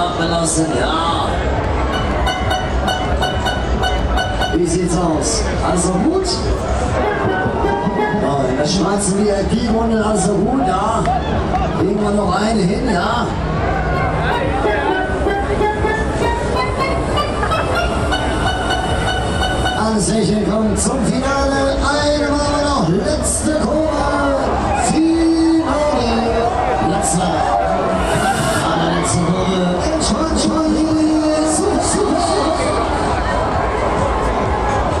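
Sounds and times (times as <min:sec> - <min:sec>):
fairground music with heavy bass: 0:00.0 - 0:35.0
ride rumbling: 0:00.0 - 0:35.0.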